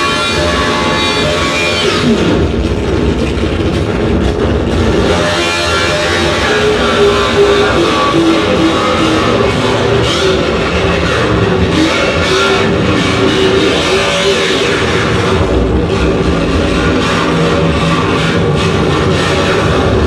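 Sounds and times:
distorted harsh noise with droning tones: 0:00.0 - 0:20.0.

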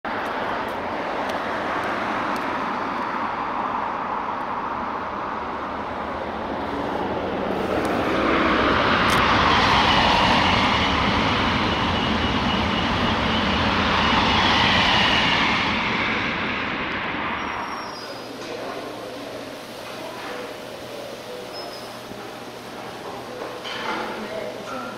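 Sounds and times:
road traffic noise: 0:00.0 - 0:24.9
vehicle passing by: 0:00.5 - 0:18.2.

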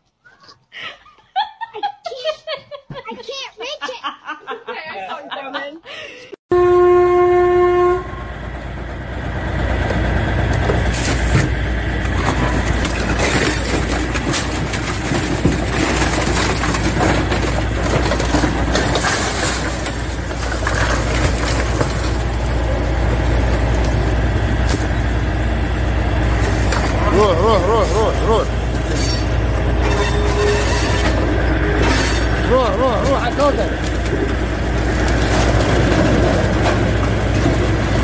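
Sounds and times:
train horn: 0:06.5 - 0:08.4
freight train rumbling past: 0:06.5 - 0:38.0.

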